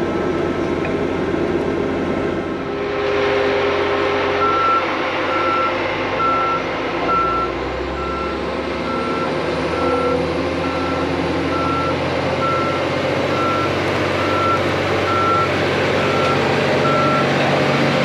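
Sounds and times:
diesel engine running: 0:00.0 - 0:18.0.

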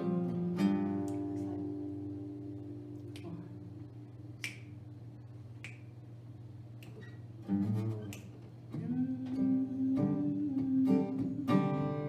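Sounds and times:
acoustic guitar chords: 0:00.0 - 0:05.0, 0:07.2 - 0:12.0
finger snaps: 0:00.9 - 0:01.5, 0:03.0 - 0:03.5, 0:04.3 - 0:04.9, 0:05.5 - 0:06.1, 0:06.7 - 0:09.4.

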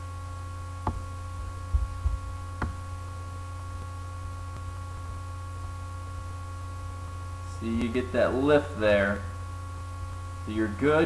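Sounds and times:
electrical hum with high whine: 0:00.0 - 0:11.0
low thumps: 0:00.8 - 0:02.9.

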